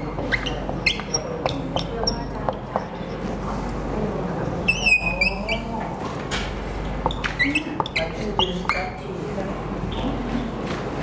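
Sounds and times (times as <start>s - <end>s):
marker squeaking on whiteboard: 0.0s - 3.3s, 4.6s - 5.7s, 7.0s - 9.0s.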